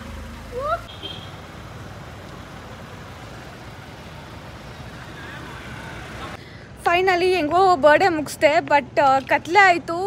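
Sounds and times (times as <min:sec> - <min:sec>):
car rolling slowly past: 0:00.0 - 0:06.4.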